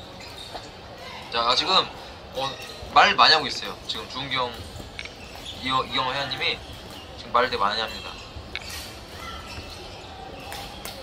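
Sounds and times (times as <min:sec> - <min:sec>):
murmur of hall: 0:00.0 - 0:11.0
players' footwork on court: 0:00.0 - 0:11.0.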